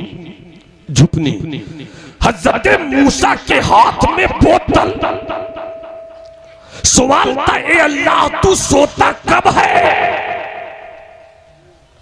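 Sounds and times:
man speaking over public address: 0.9s - 5.5s, 6.8s - 10.8s
faint sound system ring: 4.5s - 8.7s, 10.4s - 12.0s.

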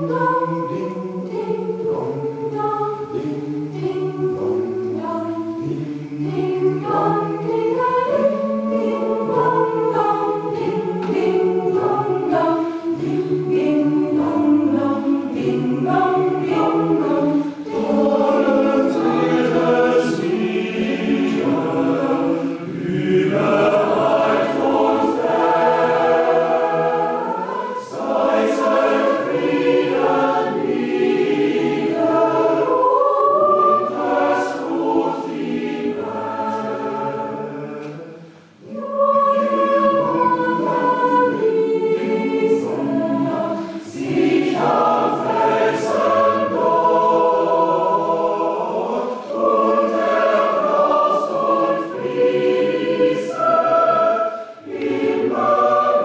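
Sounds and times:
choir singing: 0.0s - 56.0s.

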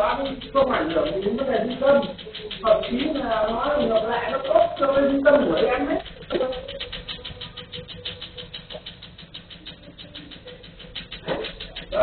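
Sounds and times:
rapid laser clicking: 0.0s - 12.0s.

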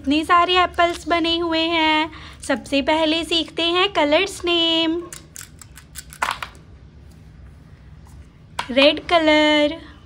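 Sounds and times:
plastic pen caps clicking: 5.1s - 6.6s.

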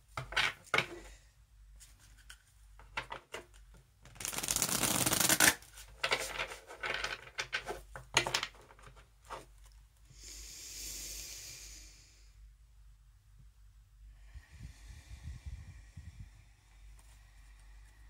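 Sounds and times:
cards being shuffled: 4.0s - 7.8s
soft steady hiss: 7.7s - 18.0s.

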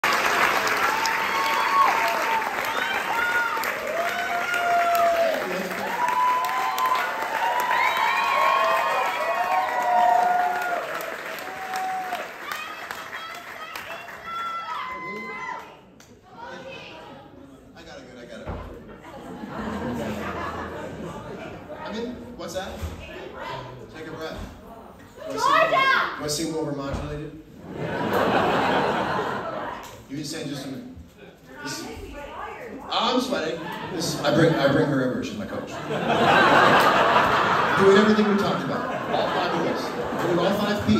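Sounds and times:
audience applauding: 0.0s - 15.8s
faint hall murmur: 0.0s - 40.9s
whoops and shouts: 0.9s - 15.8s.

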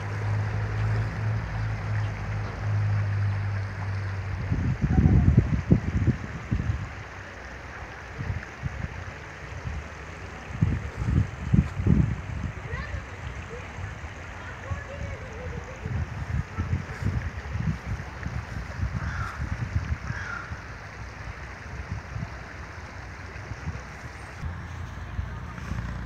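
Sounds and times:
wind buffeting microphone: 0.0s - 7.2s, 8.0s - 24.5s.

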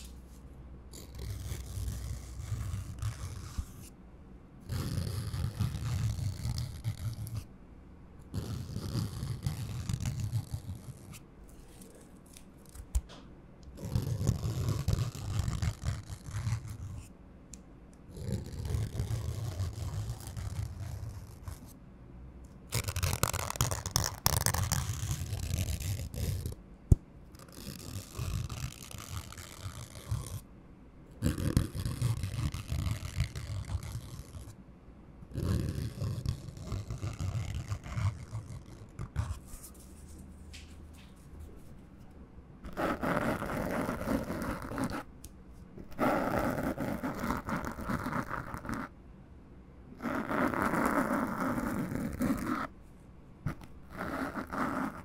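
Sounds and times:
paper scraping on microphone foam: 0.0s - 0.4s, 1.0s - 3.9s, 4.7s - 7.4s, 13.8s - 17.1s, 18.2s - 21.7s, 22.7s - 26.5s, 31.2s - 34.5s, 35.3s - 40.3s, 53.5s - 55.0s.

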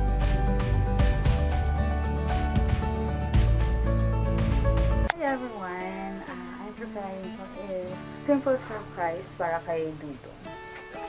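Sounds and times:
acoustic guitar background music: 0.0s - 11.0s
woman talking: 5.1s - 10.6s.

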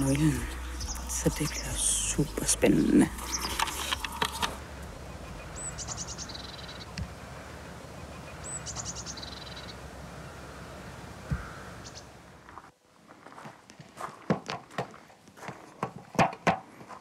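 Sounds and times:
songbird singing with trill: 0.0s - 7.1s, 7.8s - 10.4s
steady outdoor hiss: 0.0s - 14.6s.

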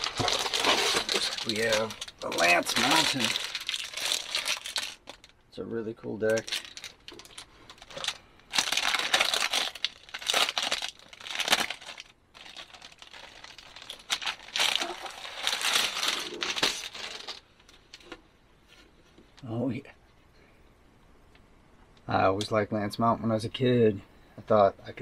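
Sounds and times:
shrink wrap crinkling and tearing: 0.0s - 5.4s, 6.2s - 18.2s.

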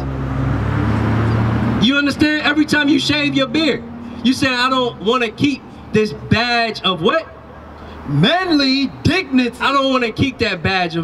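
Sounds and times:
traffic noise: 0.0s - 11.0s
vehicle engine humming: 0.0s - 11.0s
man speaking: 1.8s - 7.4s, 8.1s - 11.0s.

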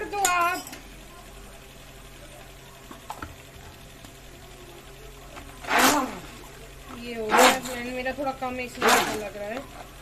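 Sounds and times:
electric hand blender whirring: 5.4s - 9.9s.

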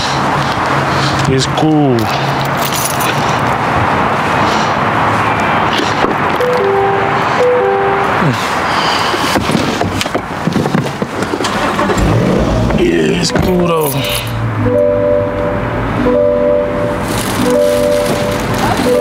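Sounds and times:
car engine running: 11.1s - 19.0s.

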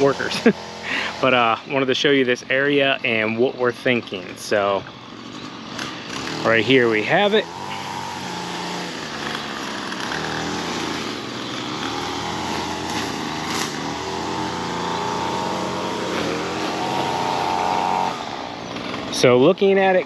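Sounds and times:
small gasoline engine running: 0.0s - 20.0s.

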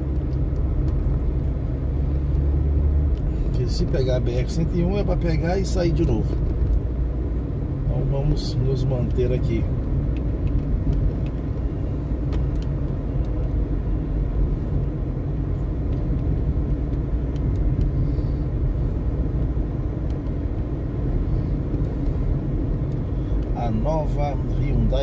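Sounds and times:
car road and engine rumble: 0.0s - 25.0s.

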